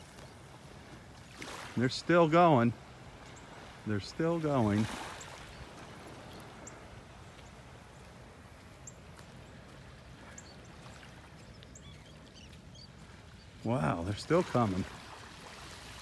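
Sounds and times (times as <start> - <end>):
terns calling: 1.8 - 15.0.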